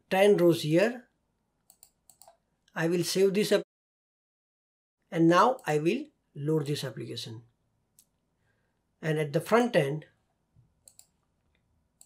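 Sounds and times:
faint computer mouse clicks: 1.7 - 2.4, 10.8 - 12.0.

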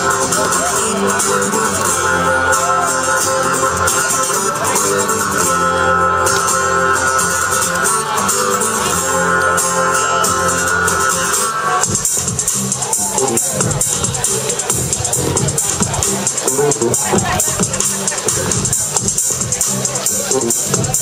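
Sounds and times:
live acoustic guitar music: 0.0 - 21.0.

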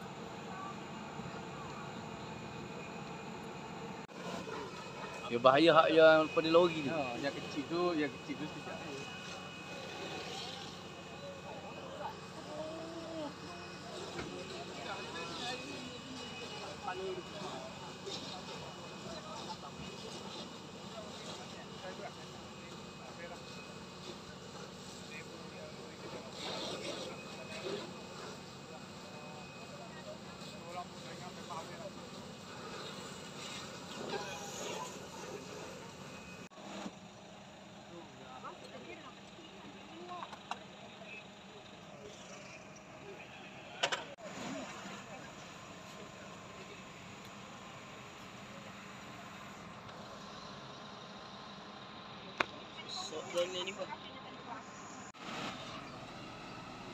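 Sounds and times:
vehicle engines droning: 0.0 - 56.9
onlookers talking: 4.1 - 37.0.

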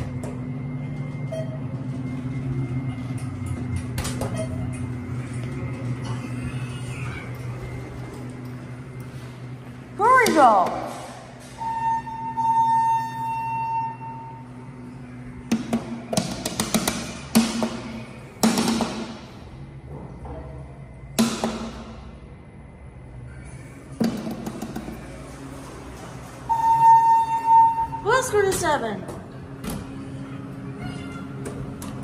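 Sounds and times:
elevator arrival tone: 0.0 - 15.5, 25.0 - 32.0.

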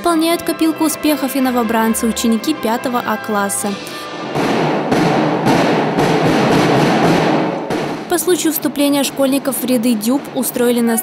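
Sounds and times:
snare drum roll: 4.0 - 8.4.

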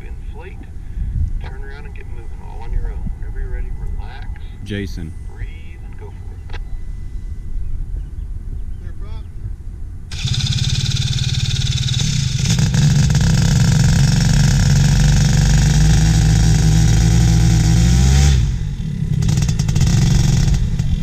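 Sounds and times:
paramotor engine and propeller: 10.1 - 21.0.

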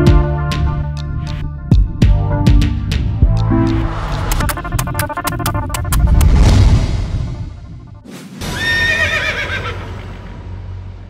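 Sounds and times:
music: 0.0 - 11.0
swish: 3.4 - 8.5
horse whinny: 8.4 - 10.1.

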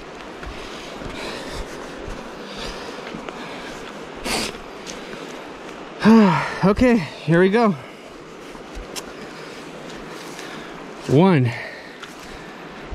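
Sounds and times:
river rushing: 0.0 - 12.9
person sniffing: 4.2 - 4.6.

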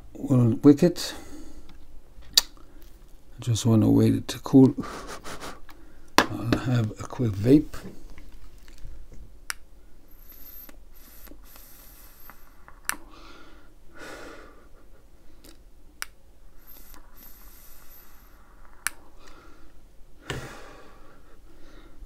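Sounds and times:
vape draws: 10.1 - 13.1, 16.6 - 19.4
breathy exhale: 10.1 - 14.7, 16.6 - 22.0.

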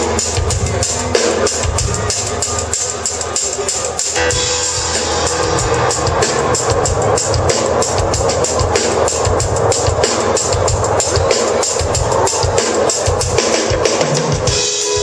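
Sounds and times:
bass: 0.0 - 15.0
driving drum kit: 0.0 - 15.0
percussion: 0.0 - 15.0
electric guitar: 4.2 - 15.0.

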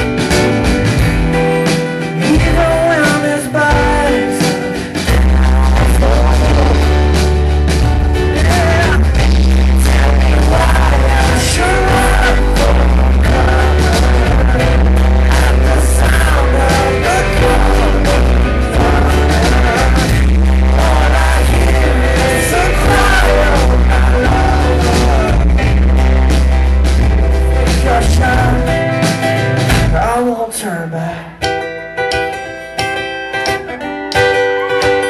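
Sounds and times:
drum hits: 0.0 - 30.2
heavy bass: 0.0 - 30.5
rock band playing live: 0.0 - 35.0
man singing: 2.2 - 7.4, 8.2 - 25.9, 27.4 - 31.6.

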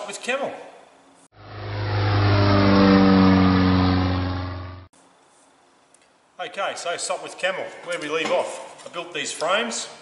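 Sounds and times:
low engine drone: 1.4 - 4.9.

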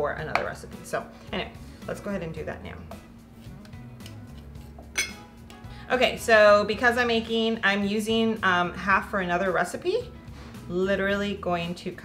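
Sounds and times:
faint background music: 0.0 - 12.0
metal clink on counter: 4.9 - 5.2.

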